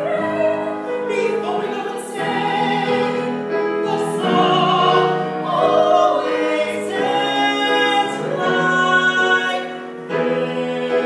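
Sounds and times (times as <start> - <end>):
man and woman singing duet: 0.0 - 11.0
piano accompaniment: 0.0 - 11.0.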